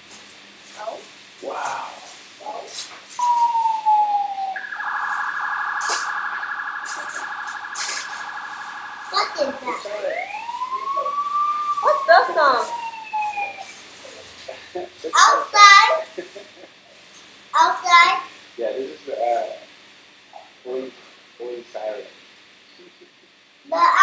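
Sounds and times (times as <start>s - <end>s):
toy siren: 3.2s - 13.9s.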